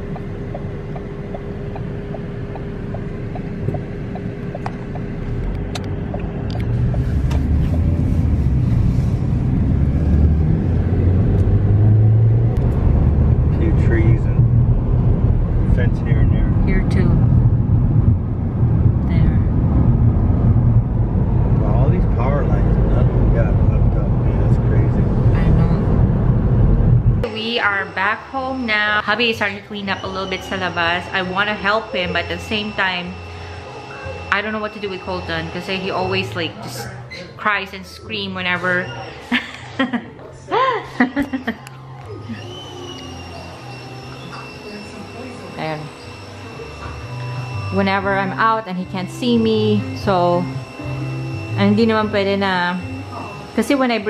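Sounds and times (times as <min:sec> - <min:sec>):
car tyre and engine rumble: 0:00.0 - 0:27.3.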